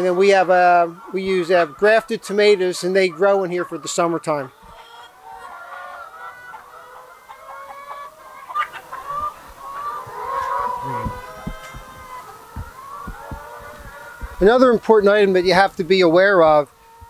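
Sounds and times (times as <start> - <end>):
hens clucking: 0.0 - 17.0
soft low thumps: 10.8 - 14.8.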